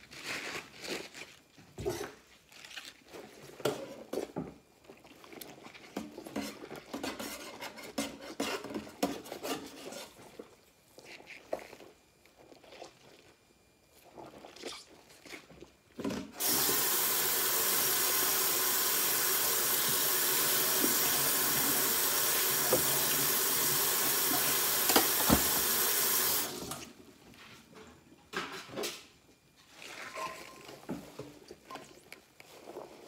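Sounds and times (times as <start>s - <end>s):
faucet running into sink: 16.4s - 26.8s
hands scrubbing dishes in suds: 29.6s - 33.0s.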